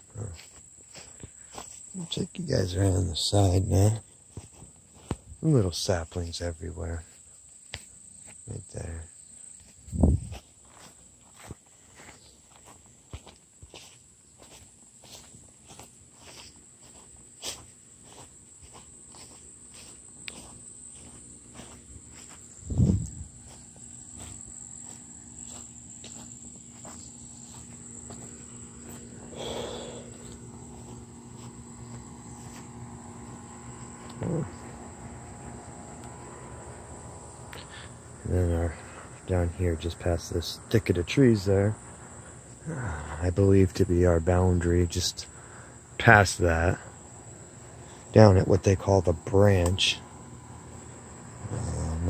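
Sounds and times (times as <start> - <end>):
insects droning: 0.0 - 52.0
footsteps through grass: 0.2 - 5.5, 9.3 - 36.8.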